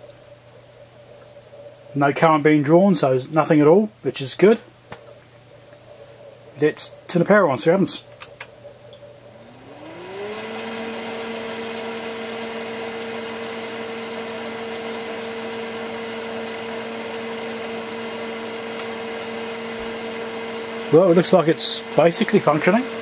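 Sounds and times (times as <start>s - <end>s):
cooling fan whine: 0.0s - 23.0s.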